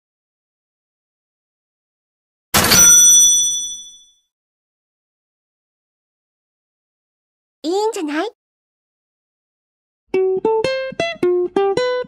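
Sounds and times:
bell ding: 2.6s - 4.2s.

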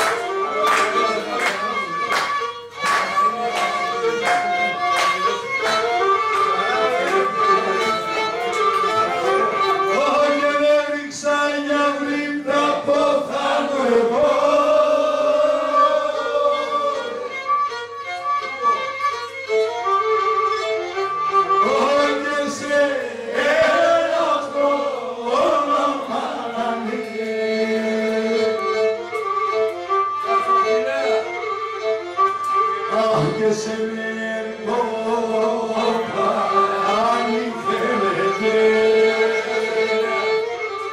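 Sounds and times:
bowed fiddle melody: 0.0s - 40.9s
man singing into a microphone: 9.9s - 15.1s, 21.6s - 28.8s, 32.8s - 40.4s.

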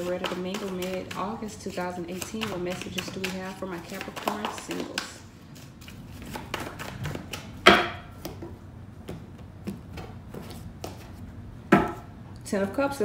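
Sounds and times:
cards being shuffled: 2.1s - 7.6s.

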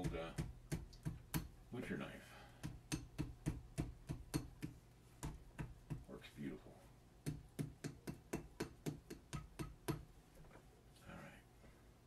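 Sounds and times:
metal blade tapping clay: 0.0s - 1.6s, 2.6s - 6.1s, 7.2s - 10.1s.

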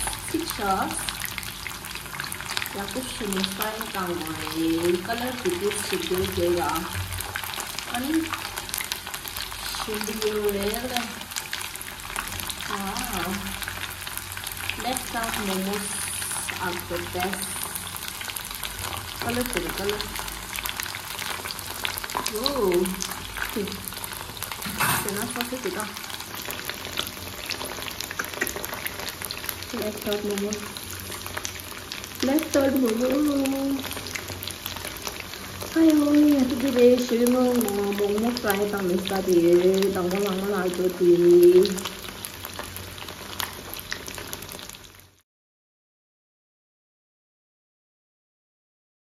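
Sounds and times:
food sizzling in hot oil: 0.0s - 45.2s.

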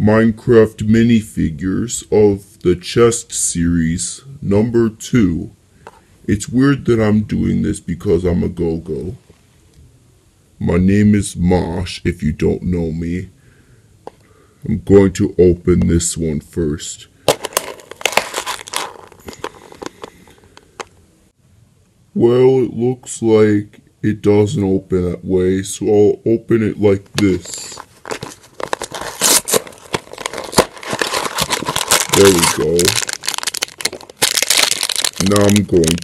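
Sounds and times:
cardboard crinkling and clicking: 17.3s - 20.2s, 27.2s - 36.0s.

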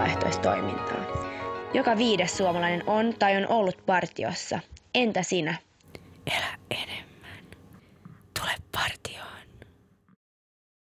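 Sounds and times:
faint background hiss: 0.0s - 10.2s
person whispering: 6.2s - 7.6s, 8.2s - 9.7s.

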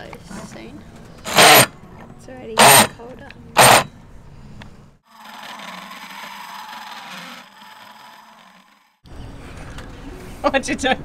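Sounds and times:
die grinder whining on metal: 1.2s - 1.7s, 2.6s - 3.0s, 3.6s - 3.9s, 5.0s - 9.1s.

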